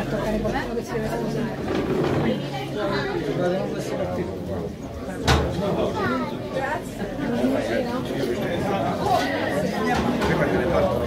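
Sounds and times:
group of people chattering: 0:00.0 - 0:11.0.

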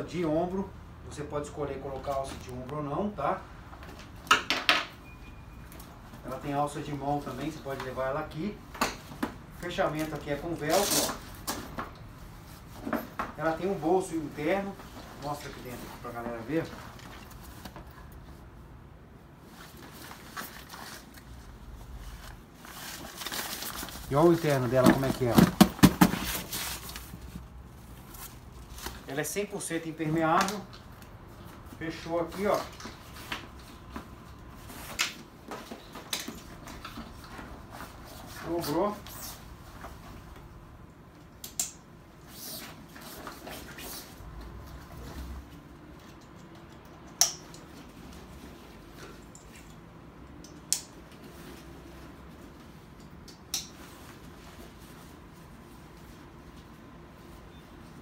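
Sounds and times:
dry bag material rustling: 0:22.0 - 0:29.1.

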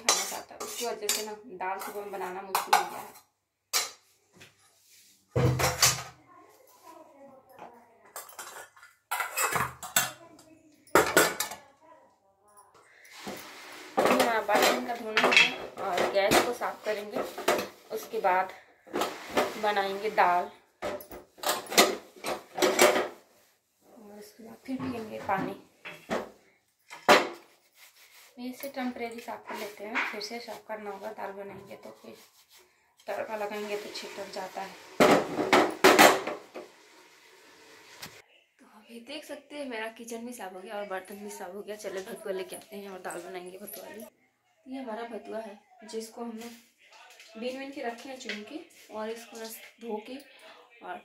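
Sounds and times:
steel utensils clattering: 0:00.0 - 0:03.1, 0:08.2 - 0:10.2, 0:13.1 - 0:18.1, 0:20.8 - 0:23.2.

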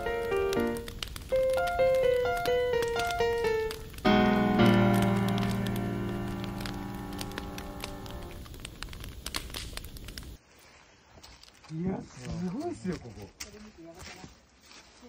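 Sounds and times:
held keyboard chord: 0:00.0 - 0:08.4
wood fire crackling: 0:00.0 - 0:15.0.

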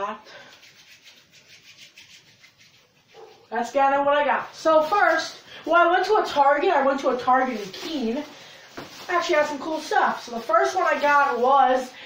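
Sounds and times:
palms rubbing together: 0:00.4 - 0:05.4, 0:07.1 - 0:11.9.

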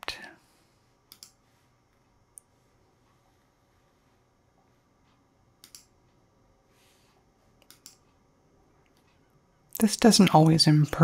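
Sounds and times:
computer mouse clicks: 0:01.1 - 0:01.4, 0:05.6 - 0:06.0, 0:07.6 - 0:08.2.

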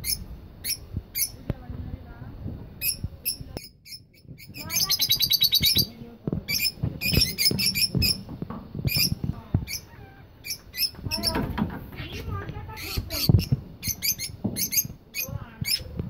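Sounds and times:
lovebirds chirping shrilly: 0:00.0 - 0:01.4, 0:02.8 - 0:11.5, 0:12.1 - 0:15.9.

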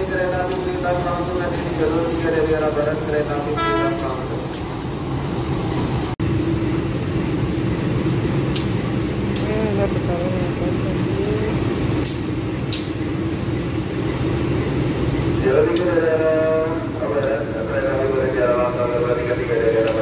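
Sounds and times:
diesel train rumbling: 0:00.0 - 0:20.0.

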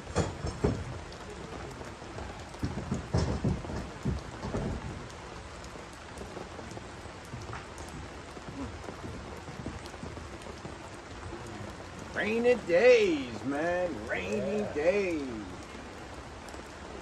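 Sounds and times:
steady rain falling: 0:00.0 - 0:17.0.

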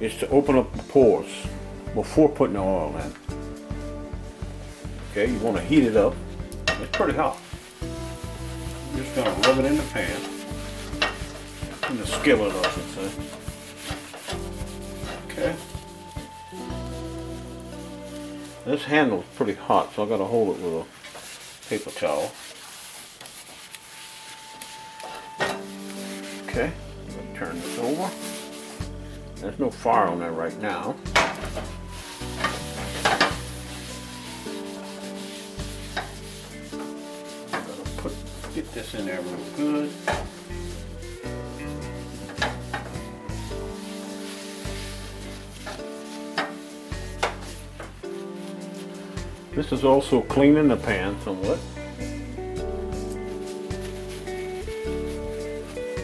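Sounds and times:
paper towel scrubbing skillet: 0:00.4 - 0:56.0.

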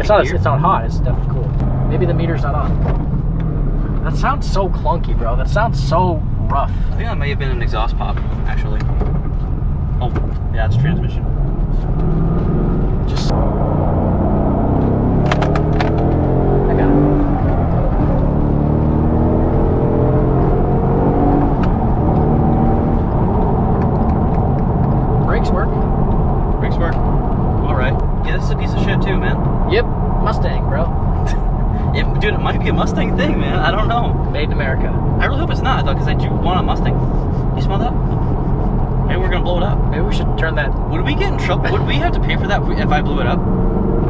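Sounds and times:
engine accelerating from cabin: 0:00.0 - 0:44.0
road noise: 0:00.0 - 0:44.0.

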